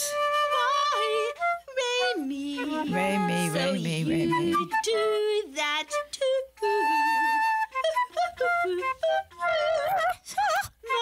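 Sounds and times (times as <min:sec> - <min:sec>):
woman singing with vibrato: 0:02.0 - 0:05.3.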